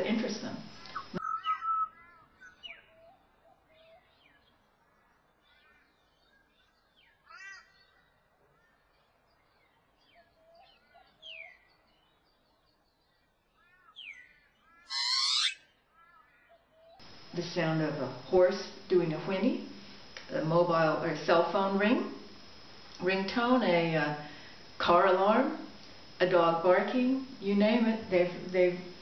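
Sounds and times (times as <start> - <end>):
bird singing whistled notes: 1.2 - 3.2, 14.0 - 15.6
harsh sweeping bird call: 14.9 - 15.6.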